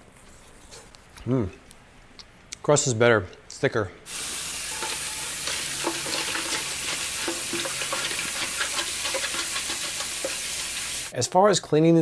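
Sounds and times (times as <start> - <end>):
tap water running into sink: 4.1 - 11.1
spatula scraping a tray: 4.7 - 10.4.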